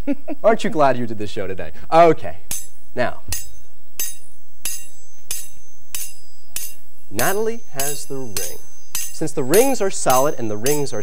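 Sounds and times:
metal rings clanking together: 0:02.5 - 0:11.0.

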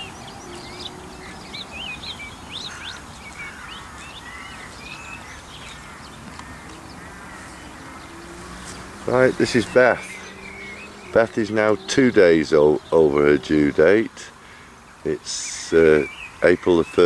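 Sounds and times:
birds calling and chirping: 0:00.0 - 0:17.0.

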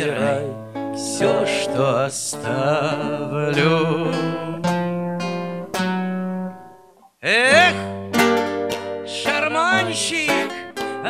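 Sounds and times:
classical guitar chords: 0:00.0 - 0:11.0.

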